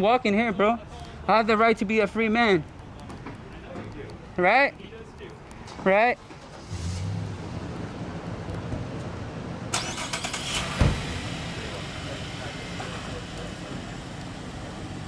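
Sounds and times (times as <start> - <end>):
car engine starting and idling: 6.2 - 15.0
car door shutting: 10.4 - 11.3.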